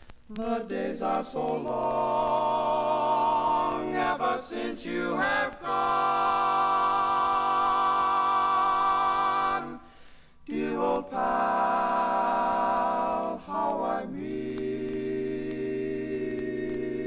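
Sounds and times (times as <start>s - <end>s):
male quartet singing a cappella: 0.3s - 17.0s.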